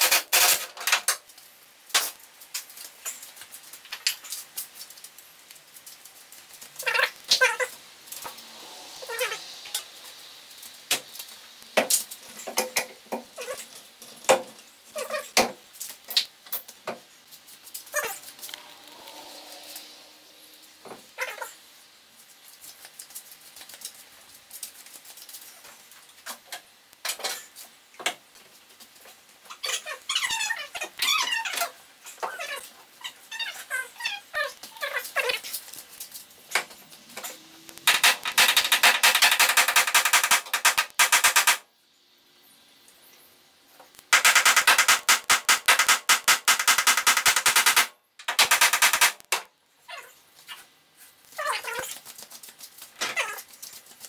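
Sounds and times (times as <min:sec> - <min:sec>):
dog whining: 0:17.9 - 0:20.5.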